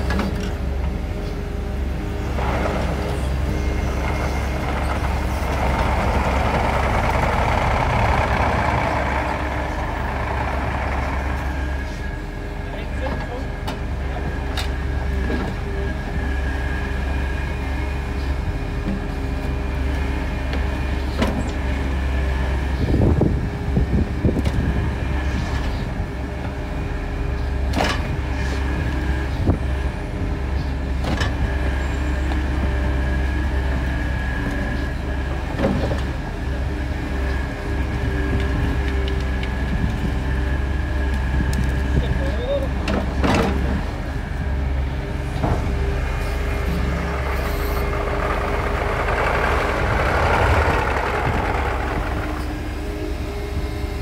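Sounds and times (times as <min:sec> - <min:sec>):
excavator engine running: 0:00.0 - 0:54.0.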